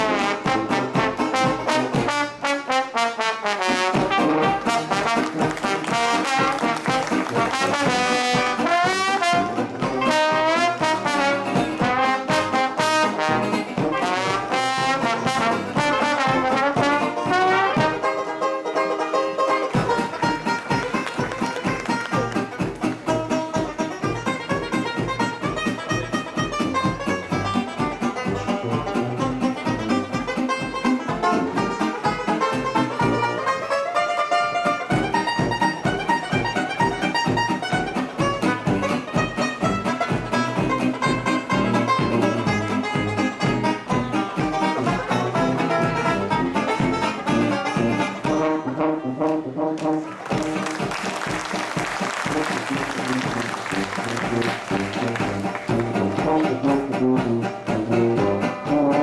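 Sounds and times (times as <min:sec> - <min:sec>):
jazz band playing: 0:00.0 - 0:59.0
applause: 0:05.0 - 0:08.2, 0:20.2 - 0:23.0, 0:49.8 - 0:56.2.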